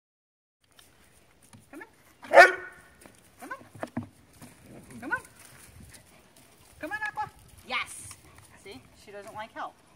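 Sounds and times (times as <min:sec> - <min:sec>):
puppy barking: 0:02.2 - 0:02.8.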